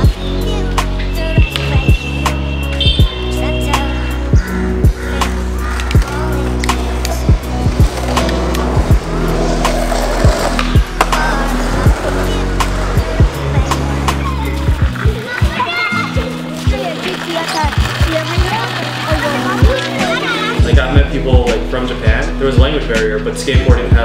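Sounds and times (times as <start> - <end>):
skateboard wheels rolling on pavement: 0.0 - 21.6
music with deep bass line: 0.0 - 24.0
skateboard clacks: 5.7 - 20.6.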